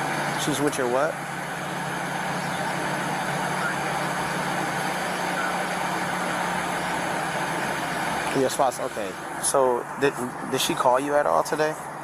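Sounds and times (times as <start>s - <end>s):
vehicle idling hum: 0.0s - 12.0s.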